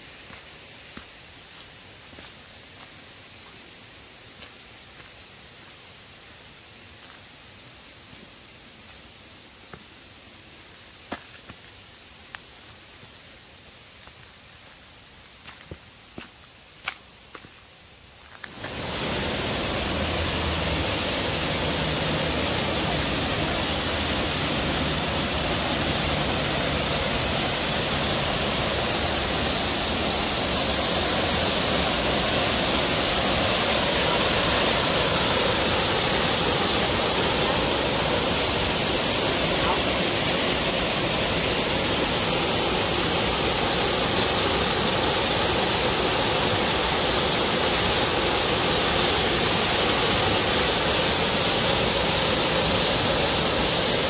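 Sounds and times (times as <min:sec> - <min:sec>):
waterfall rushing into pool: 0:18.4 - 0:54.0.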